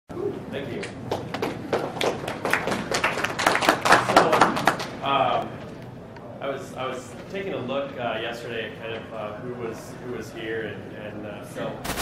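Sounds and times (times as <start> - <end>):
audience applauding: 1.1 - 4.9.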